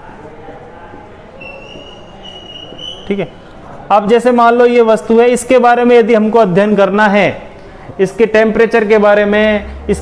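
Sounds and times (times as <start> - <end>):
marker squeaking on whiteboard: 1.4 - 3.4.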